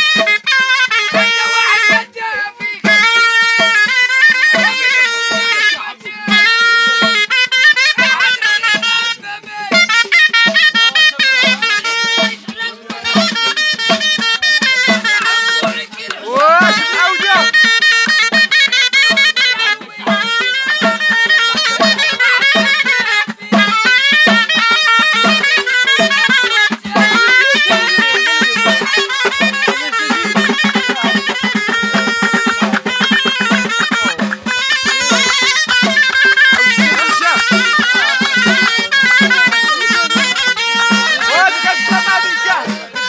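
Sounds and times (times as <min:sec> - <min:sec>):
hand drums beating: 0:00.0 - 0:43.0
shawm playing fast melody: 0:00.0 - 0:43.0.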